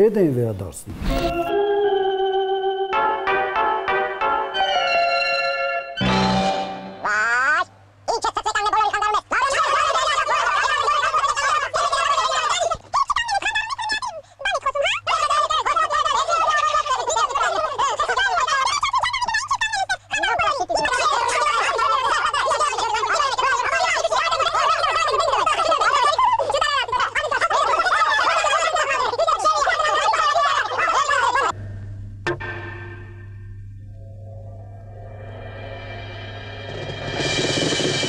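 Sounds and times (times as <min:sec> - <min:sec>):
cartoon voices chattering and squawking: 0:07.0 - 0:31.6.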